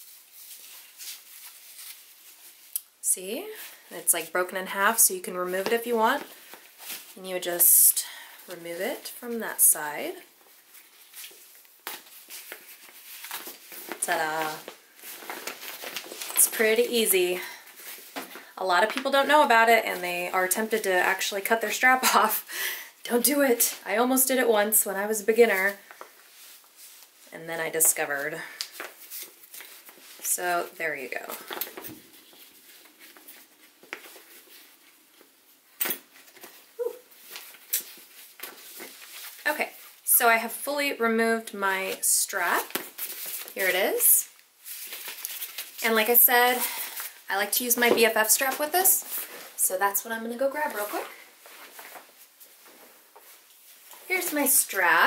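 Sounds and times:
soft handling clicks and rustles: 31.2 - 40.0, 50.7 - 54.5.

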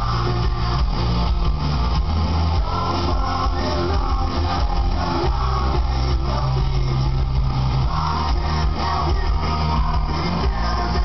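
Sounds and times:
distorted bass and guitar chord: 0.0 - 11.0.

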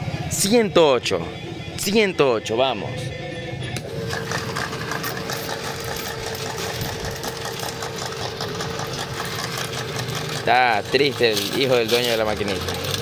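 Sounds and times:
slot machine rapid ticking: 3.9 - 13.0.

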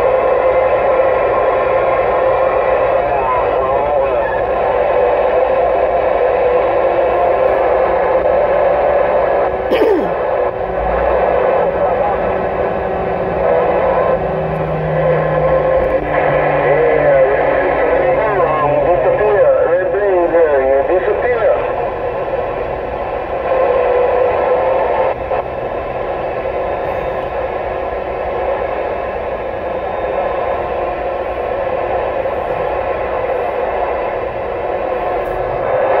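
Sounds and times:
radio static hiss: 0.0 - 36.0
faint unintelligible voices: 2.4 - 5.7.

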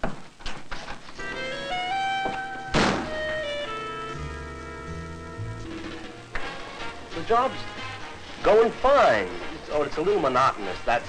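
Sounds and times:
music of held notes: 1.2 - 11.0
door shutting thunk: 2.2 - 3.2.

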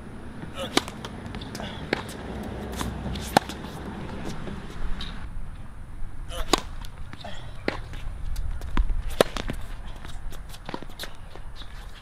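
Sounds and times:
footsteps on hard court: 0.4 - 5.2
tennis racket striking ball: 0.4 - 5.2, 6.4 - 11.1.

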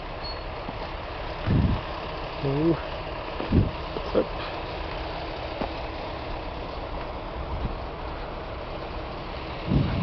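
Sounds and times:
earthmoving machinery engine rumble: 0.0 - 10.0.

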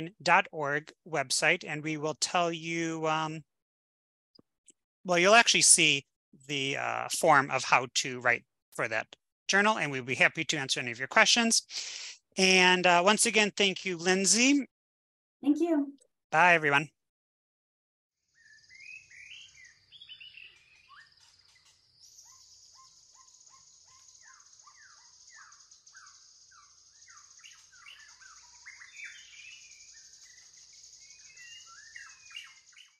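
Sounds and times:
birds chirping and whistling: 18.4 - 33.0.

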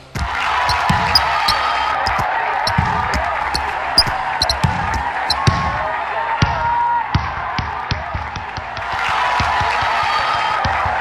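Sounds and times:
ball bouncing: 0.0 - 5.8
crowd noise: 0.0 - 11.0
music: 0.0 - 11.0.

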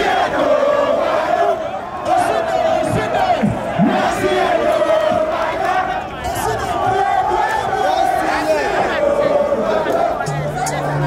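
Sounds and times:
crowd chanting and shouting: 0.0 - 11.0.

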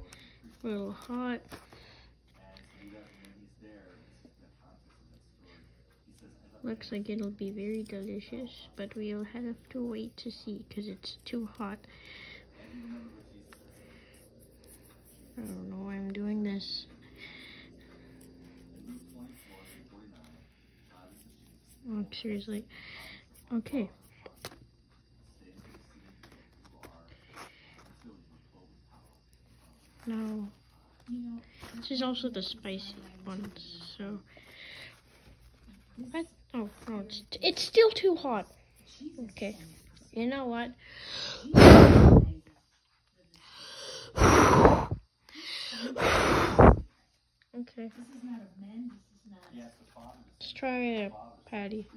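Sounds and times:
in-breath: 0.0 - 0.6, 1.6 - 3.4, 11.8 - 15.1, 17.0 - 18.6, 22.7 - 23.4, 27.1 - 28.0, 34.3 - 35.3, 40.8 - 42.3, 43.4 - 46.9
breath hitting microphone: 41.4 - 42.3, 44.1 - 45.0, 46.0 - 46.9
person blowing hard: 41.6 - 42.3, 44.2 - 45.0, 46.0 - 46.8.

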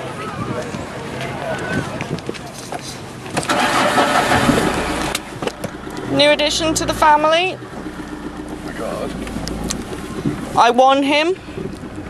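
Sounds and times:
faint voices: 0.0 - 3.8
car engine cranking and idling: 3.2 - 12.0.

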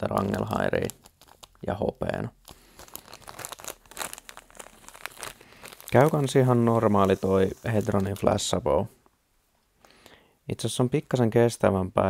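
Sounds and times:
plastic bag crinkling: 0.0 - 8.7.

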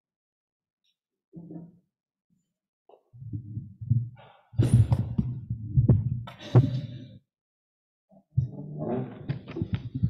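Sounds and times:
microphone handling thumps: 3.2 - 6.8, 8.4 - 10.0.

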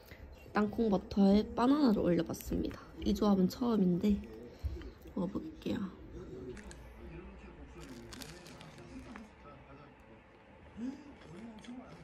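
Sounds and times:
person chewing bread: 6.1 - 9.4, 10.6 - 12.0.

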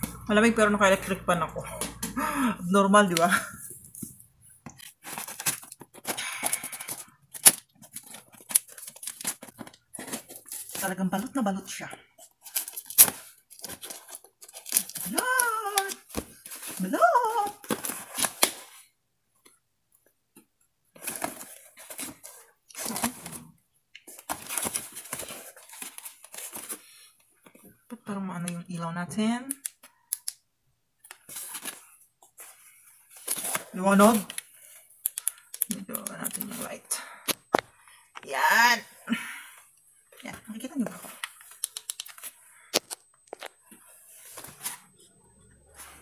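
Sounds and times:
parcel wrapping crinkling and tearing: 3.6 - 11.4, 12.0 - 18.9.

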